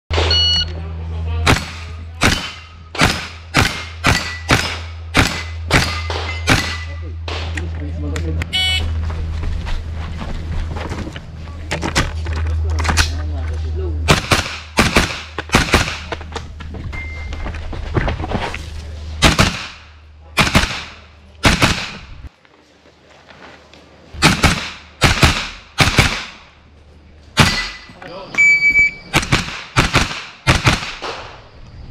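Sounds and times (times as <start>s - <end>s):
steady low hum: 0.1s - 31.9s
short beep: 0.2s - 0.8s, 8.5s - 9.0s, 16.9s - 17.4s, 28.4s - 29.1s
rifle shots: 1.5s - 7.5s, 14.1s - 16.1s, 19.2s - 22.2s, 24.2s - 26.5s, 27.4s - 27.9s, 29.1s - 31.4s.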